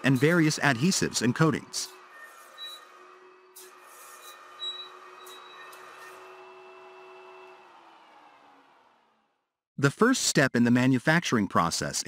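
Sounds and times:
machine whir: 0.0s - 9.3s.

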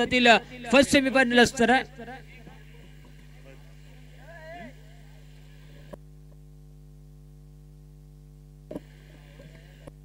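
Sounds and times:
electrical mains hum: 0.0s - 10.0s
faint hiss: 1.8s - 6.3s, 8.7s - 10.0s.

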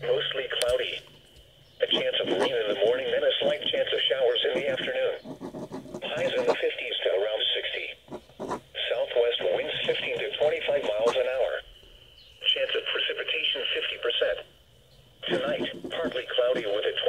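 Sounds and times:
voice through small radio speaker: 0.0s - 1.0s, 1.8s - 8.0s, 8.8s - 11.7s, 12.4s - 14.5s, 15.2s - 17.0s.

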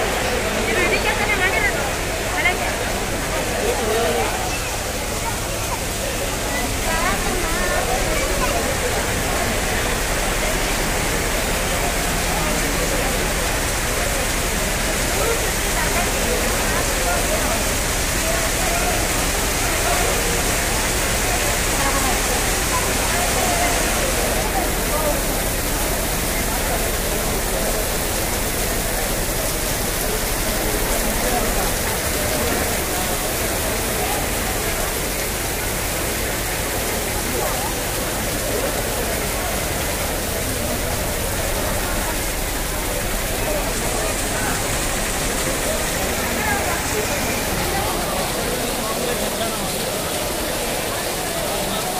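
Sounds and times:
heavy rain pouring: 0.0s - 51.9s
murmur of crowd voices: 0.0s - 51.9s.

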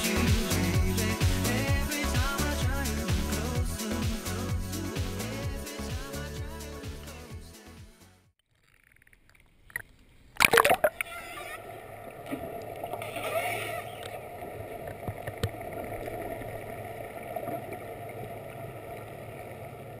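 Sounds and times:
camera splashing into water: 8.6s - 11.1s
muffled underwater rush: 10.4s - 20.0s.

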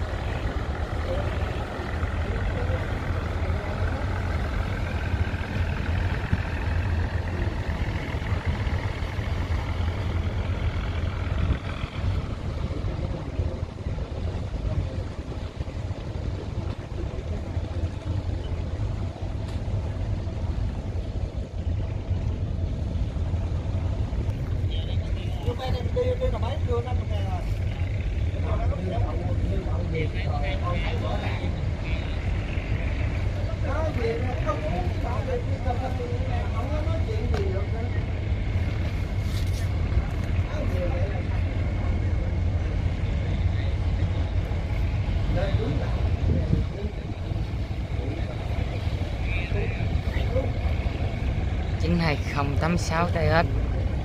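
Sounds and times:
people's voices: 0.0s - 20.1s, 24.5s - 54.0s
boat diesel engine droning: 0.0s - 54.0s.

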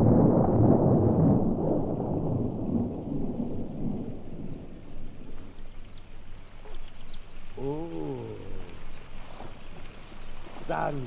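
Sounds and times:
thunder rumbling: 0.0s - 6.6s
rain hiss: 0.0s - 11.0s
faint high bird chirps: 5.4s - 9.0s.

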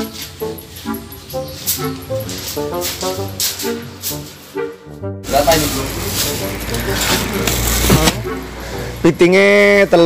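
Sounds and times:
road traffic rumble: 0.0s - 10.0s
plastic bag rustling: 5.3s - 8.2s.

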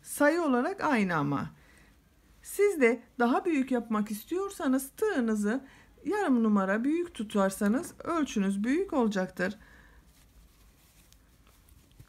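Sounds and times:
hands handling soft fabric: 9.8s - 12.0s.

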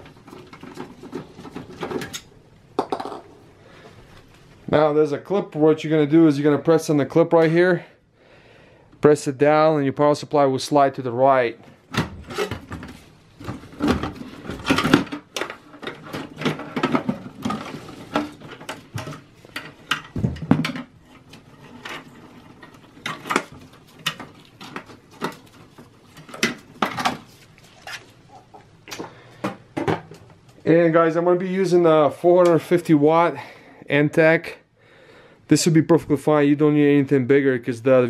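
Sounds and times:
cables rustling against metal case: 0.0s - 2.3s, 11.7s - 30.5s.

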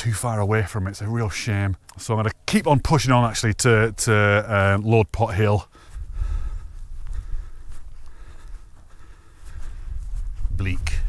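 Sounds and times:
footsteps on grass: 2.7s - 11.0s
wind buffeting microphone: 5.8s - 11.0s.

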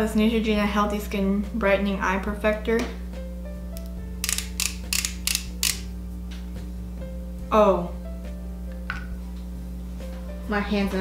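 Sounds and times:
soft background music: 0.0s - 11.0s
sharp clicks of concealer pen: 3.8s - 5.9s.

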